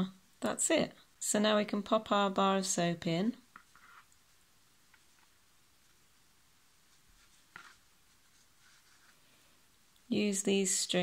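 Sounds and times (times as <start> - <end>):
faint rustle of yarn pouch: 3.6 - 9.7.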